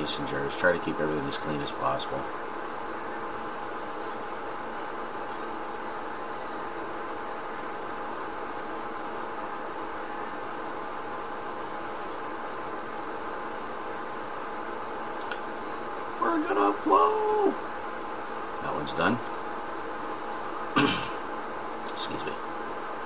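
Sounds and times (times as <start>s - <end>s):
mechanical hum with hiss: 0.0s - 23.0s.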